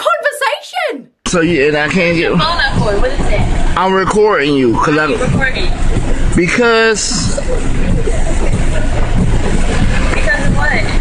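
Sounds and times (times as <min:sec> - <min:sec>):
car engine idling: 0:01.3 - 0:11.0.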